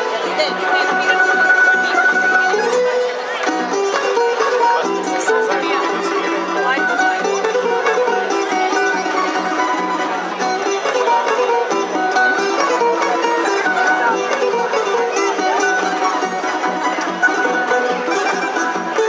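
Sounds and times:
plucked string orchestra melody: 0.0 - 19.0.

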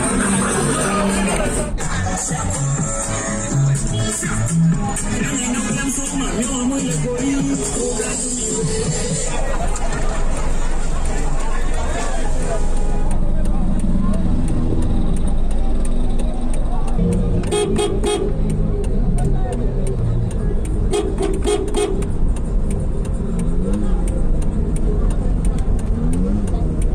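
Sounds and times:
low engine rumble: 0.0 - 26.9
people's voices: 0.0 - 26.9
car horn beeps: 17.1 - 18.4, 20.8 - 22.1.

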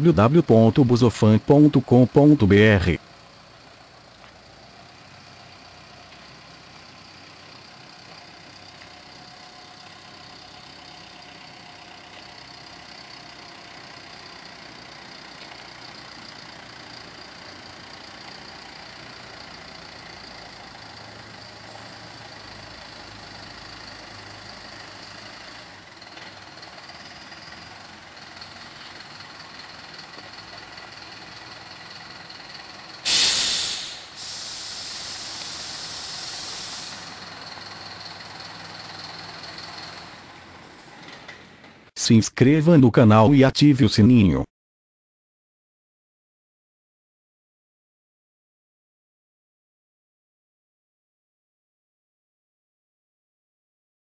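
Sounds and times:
minibus engine idling: 0.0 - 41.9
air brakes venting: 33.0 - 37.8.

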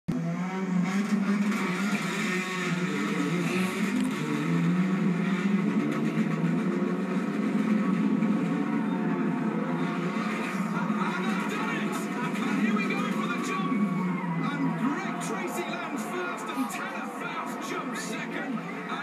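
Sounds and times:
race car engines accelerating: 0.1 - 19.0.

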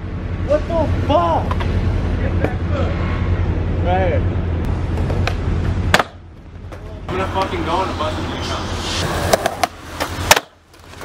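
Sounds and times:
skateboard wheels rolling on concrete: 4.7 - 11.0
skateboard tail pop: 5.0 - 6.2, 9.3 - 10.6
skater slamming onto concrete: 9.2 - 11.0.

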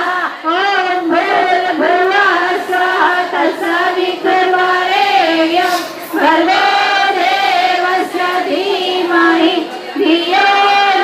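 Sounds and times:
women singing chant in unison: 0.0 - 11.0.

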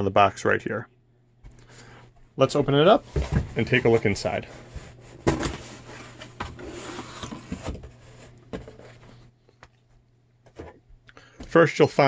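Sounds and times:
cardboard scraping and rustling: 3.0 - 9.3.

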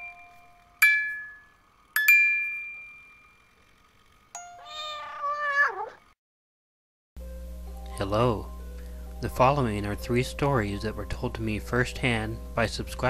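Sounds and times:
glockenspiel-like bell notes: 0.0 - 3.5
cat meowing: 4.6 - 6.1.

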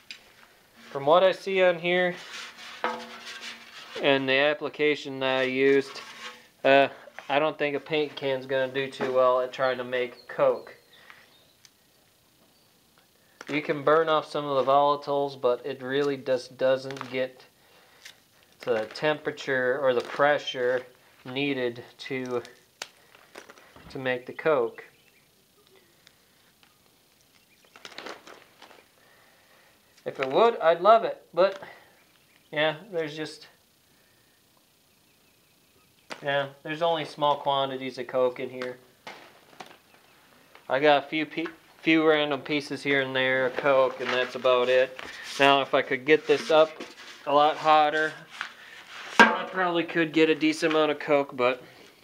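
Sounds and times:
metal tool scraping coal: 0.8 - 4.2, 5.4 - 6.7
metal paint can ringing: 2.8 - 4.0.

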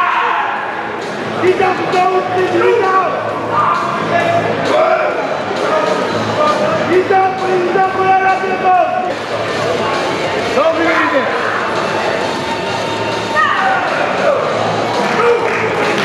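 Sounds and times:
music: 0.0 - 16.0.

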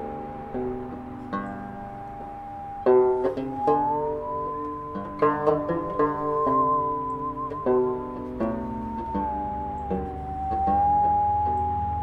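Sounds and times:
bowed musical saw: 0.0 - 12.0
plucked banjo notes: 0.0 - 12.0.

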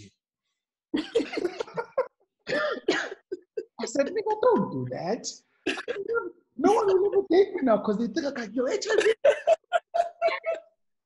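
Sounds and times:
man laughing: 1.0 - 2.2, 8.8 - 10.8.

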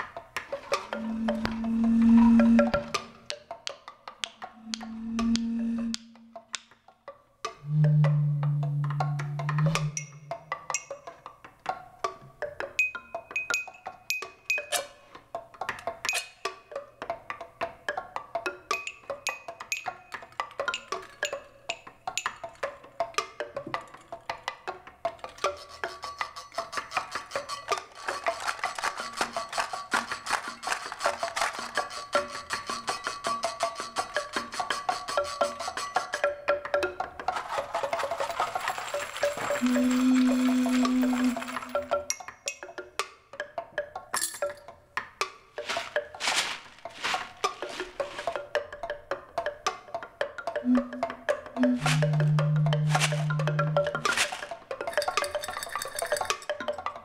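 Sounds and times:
percussion clicks and knocks: 0.0 - 57.0
steady high tone: 1.0 - 3.0, 4.6 - 6.2, 7.6 - 10.2, 50.7 - 54.1
fast shaking and rattling: 25.2 - 36.2, 37.1 - 42.1, 45.6 - 48.6, 51.7 - 56.8.

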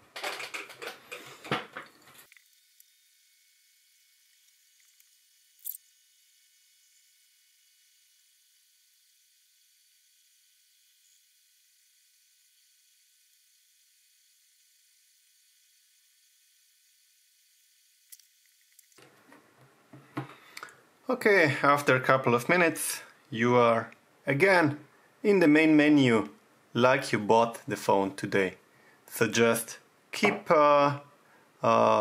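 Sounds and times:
faint high hiss: 20.2 - 32.0.

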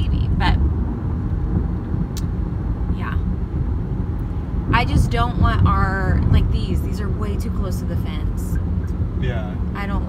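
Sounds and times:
car cabin road rumble: 0.0 - 10.0
person saying yeah: 9.2 - 9.6.

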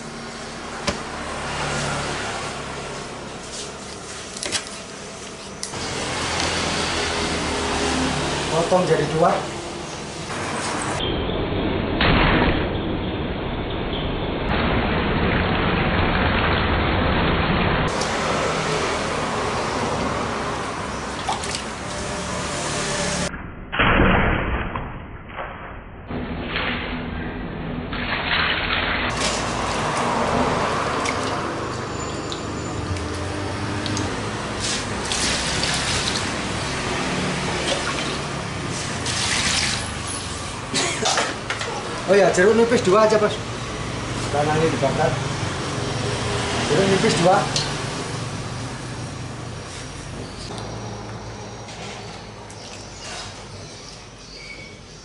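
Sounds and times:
water running into metal basin: 14.7 - 22.8, 27.9 - 40.4
fish pieces splashing in water: 21.0 - 22.2, 28.0 - 40.0.

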